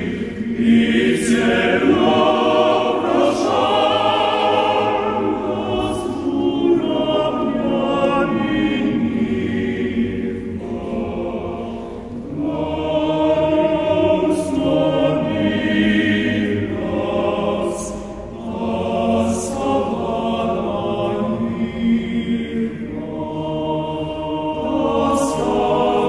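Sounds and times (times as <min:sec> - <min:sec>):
men's choir singing a cappella: 0:00.0 - 0:26.0.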